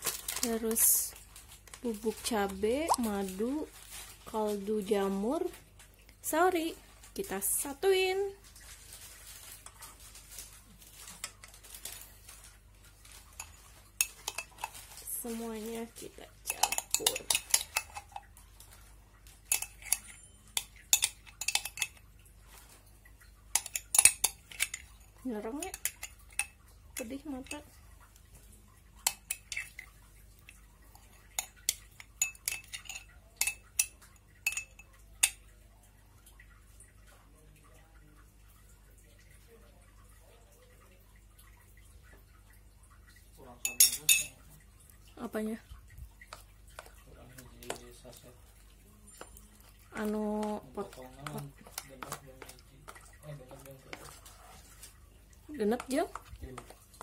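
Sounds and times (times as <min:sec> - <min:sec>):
spoon stirring paste in metal bowl: 0:02.0 - 0:03.6, 0:13.2 - 0:22.7, 0:23.5 - 0:35.6, 0:46.0 - 0:57.0
spoon clinking against glass jar: 0:13.4 - 0:14.8, 0:16.5 - 0:18.3, 0:19.5 - 0:22.0, 0:23.6 - 0:26.6, 0:31.4 - 0:35.4, 0:43.6 - 0:44.4.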